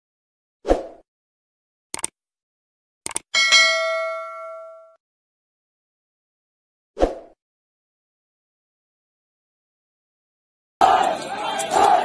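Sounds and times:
mouse clicks: 2.0 - 2.2, 3.1 - 3.3
bell ding: 3.4 - 5.0.

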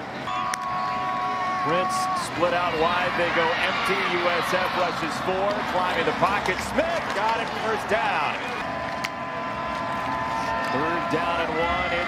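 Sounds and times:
stadium crowd hum: 0.0 - 12.0
man talking: 1.7 - 8.4, 10.7 - 12.0.

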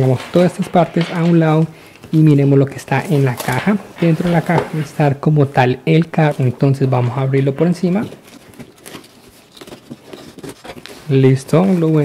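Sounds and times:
cardboard scraping and rustling: 3.0 - 5.2, 6.9 - 12.0.

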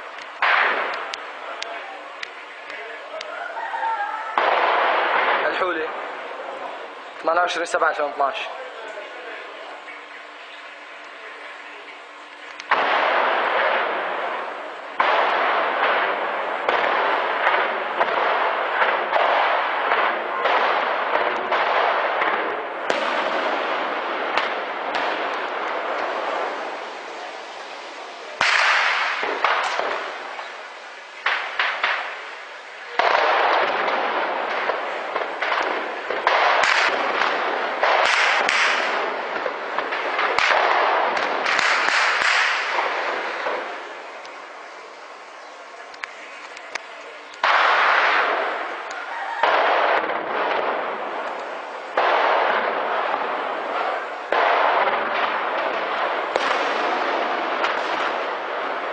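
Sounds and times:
heavy gunfire: 0.0 - 3.2, 4.2 - 9.7, 12.6 - 44.9, 46.0 - 58.9.

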